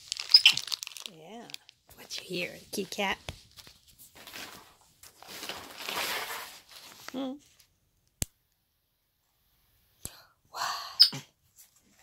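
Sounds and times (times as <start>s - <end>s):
rustling of plush toys: 0.0s - 7.8s.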